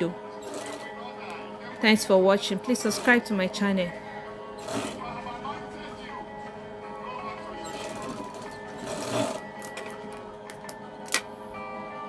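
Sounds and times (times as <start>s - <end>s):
industrial sewing machine running: 0.0s - 1.1s, 1.8s - 3.9s, 4.5s - 5.4s, 7.6s - 9.4s
background music: 0.0s - 12.0s.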